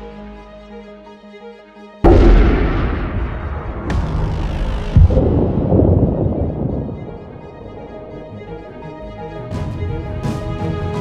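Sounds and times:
music: 0.0 - 11.0
rifle shot: 2.1 - 7.9
sharp crack: 2.1 - 8.7.

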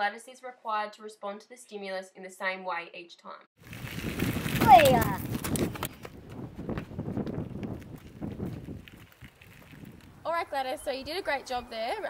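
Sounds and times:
footsteps on gravel: 3.6 - 12.0
tyres rolling on gravel: 3.6 - 12.0.

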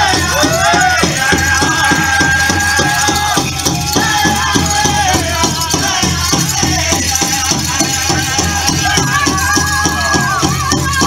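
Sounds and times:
big drum steady beat: 0.0 - 11.0
singers holding high notes: 0.0 - 11.0.

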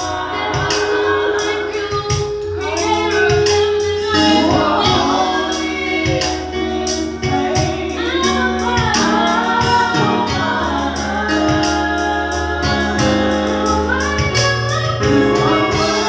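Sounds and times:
instrumental accompaniment with beat: 0.0 - 16.0
women singing gospel song: 0.0 - 16.0.

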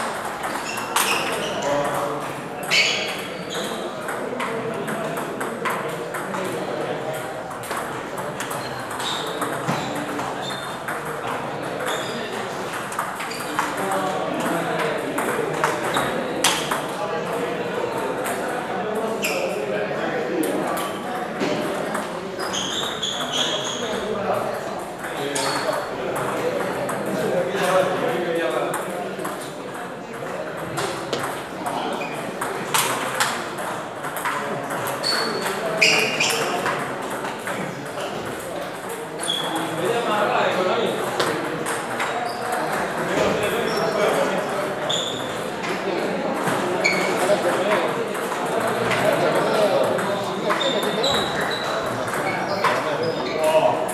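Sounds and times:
table tennis balls clicking: 0.0 - 19.2, 24.8 - 27.3, 28.6 - 40.3, 40.9 - 44.4, 45.1 - 53.9
many voices talking: 0.0 - 53.9.

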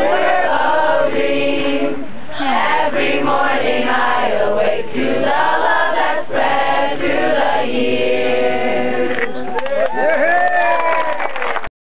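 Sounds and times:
teenagers singing in chorus: 0.0 - 9.6.

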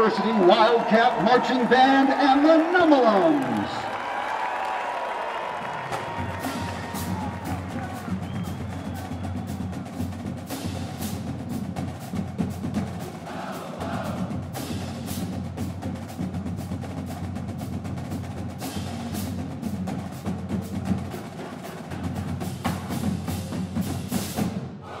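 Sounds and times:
bass drums: 5.8 - 24.6
snare drum strokes: 5.9 - 24.6.

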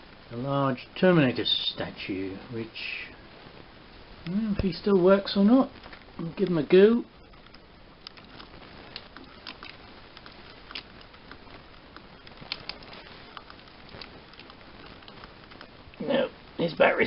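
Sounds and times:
steady low hiss: 0.0 - 17.0.

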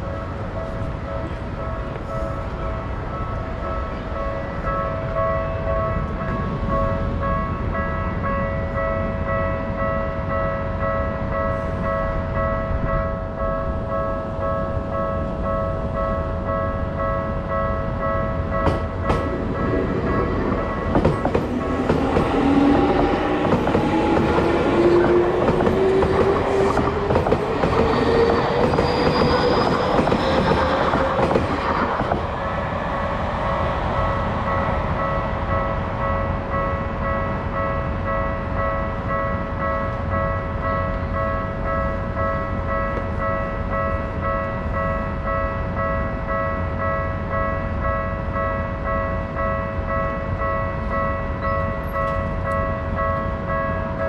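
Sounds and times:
train wheels rumbling: 15.0 - 47.5
level crossing warning alarm: 19.9 - 32.3.

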